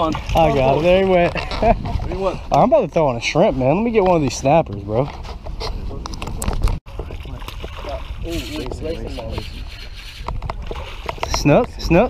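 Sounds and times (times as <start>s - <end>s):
water splashing around boat: 0.0s - 12.0s.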